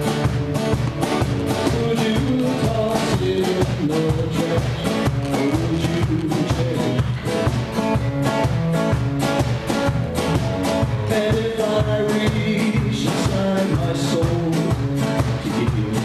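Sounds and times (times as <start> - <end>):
drum kit steady beat: 0.0 - 16.0
strummed acoustic guitars: 0.0 - 16.0
man singing: 1.4 - 7.7, 10.8 - 16.0.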